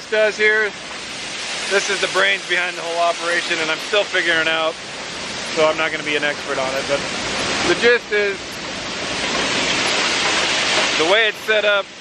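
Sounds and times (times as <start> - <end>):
grain dryer rushing noise: 0.0 - 12.0.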